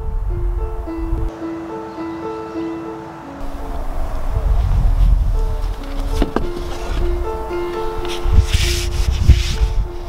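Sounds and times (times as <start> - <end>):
soft background music: 0.0 - 10.0
scraping rubbing noise: 4.5 - 10.0.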